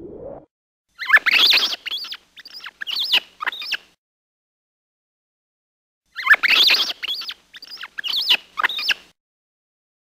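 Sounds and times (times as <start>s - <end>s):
rat squeaking: 1.0s - 3.8s, 6.2s - 9.1s.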